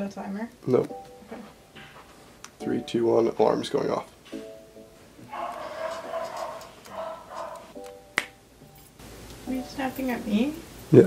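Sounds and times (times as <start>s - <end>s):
finger snap: 7.8s - 8.4s.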